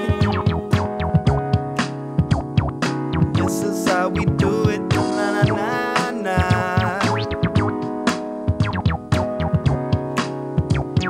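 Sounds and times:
funk band playing: 0.0s - 11.0s
steady drum beat from boombox: 0.0s - 11.0s.

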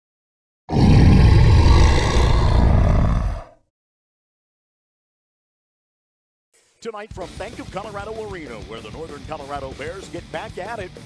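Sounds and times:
bear roar: 0.7s - 3.7s.

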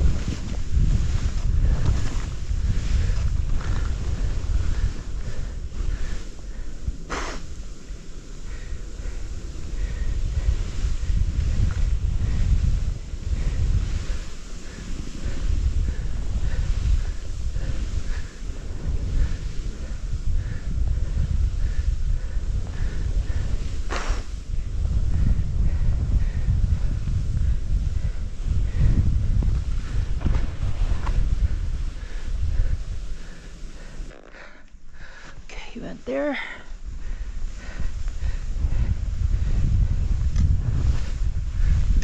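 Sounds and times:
skis hissing through snow: 0.0s - 34.4s, 36.9s - 42.0s
wind buffeting microphone: 0.0s - 42.0s.

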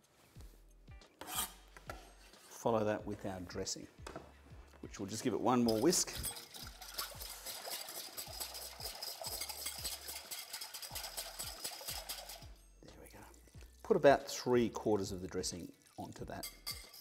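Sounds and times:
wire whisk beating liquid in bowl: 5.6s - 12.6s.

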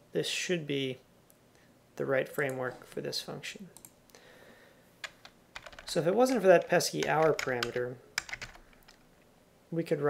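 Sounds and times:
computer keyboard keystrokes: 5.0s - 9.0s.

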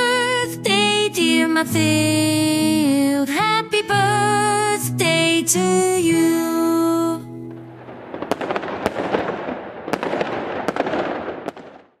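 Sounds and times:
fireworks crackling: 7.5s - 12.0s
sharp firework pops: 7.5s - 12.0s.

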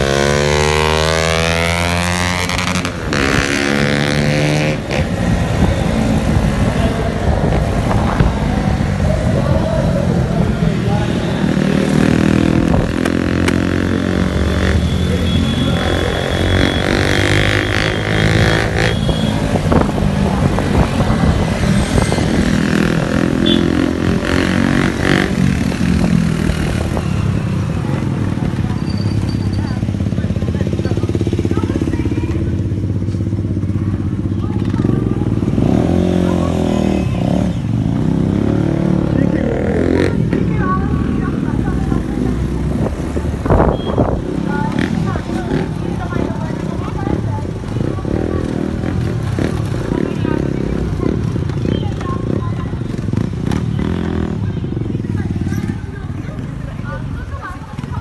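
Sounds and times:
motorcycle engine running: 0.0s - 58.0s
wind noise on microphone: 2.5s - 10.6s, 12.2s - 13.2s, 18.2s - 23.4s, 24.0s - 28.9s, 40.2s - 55.8s.

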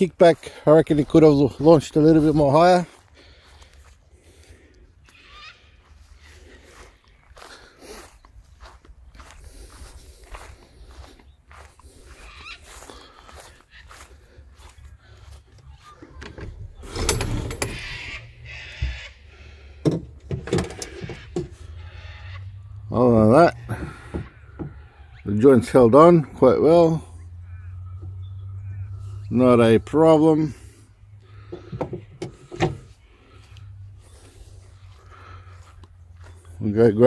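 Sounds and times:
footsteps through grass: 0.1s - 16.2s, 32.9s - 36.9s.

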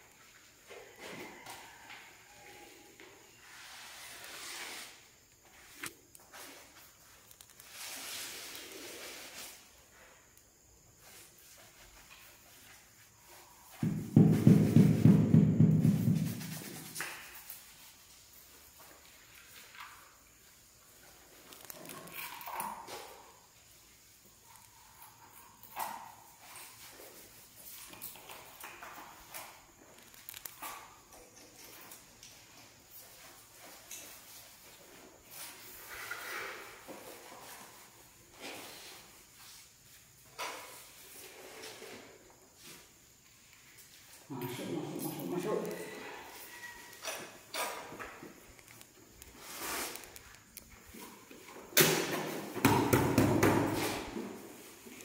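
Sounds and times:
trowel scraping: 3.4s - 5.1s.

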